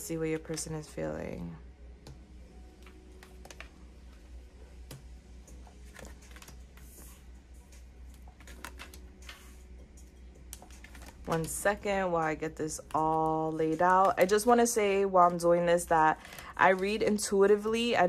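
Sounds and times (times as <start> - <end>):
cards sliding: 10.5 - 11.4.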